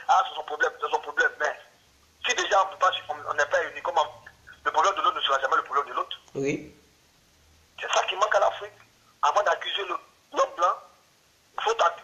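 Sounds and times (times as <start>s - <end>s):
man talking: 0.0s - 6.7s, 7.8s - 10.8s, 11.6s - 12.0s.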